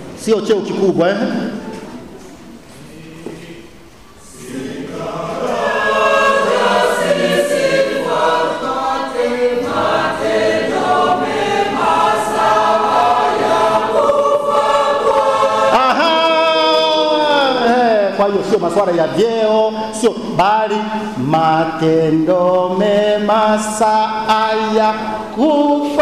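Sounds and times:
congregation singing: 0.0 - 26.0.

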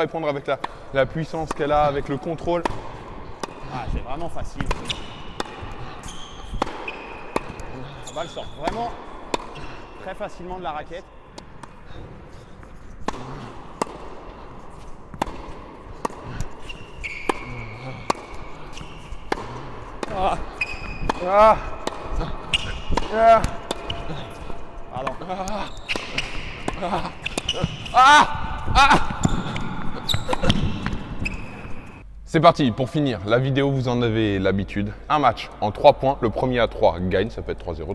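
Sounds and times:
court shoes squeaking: 1.3 - 32.1
tennis ball hits: 4.5 - 5.8, 6.4 - 7.7, 8.6 - 9.6, 13.0 - 31.4.

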